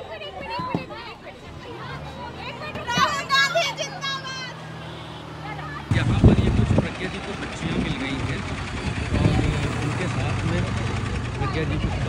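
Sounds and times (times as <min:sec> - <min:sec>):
young women chattering: 0:00.0 - 0:05.9
bus engine idling: 0:00.0 - 0:12.0.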